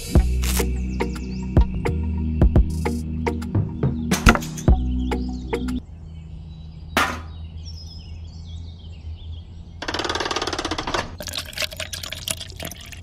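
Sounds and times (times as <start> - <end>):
sharp knock: 4.1 - 4.6
concrete slurry pouring into bucket: 11.2 - 13.0.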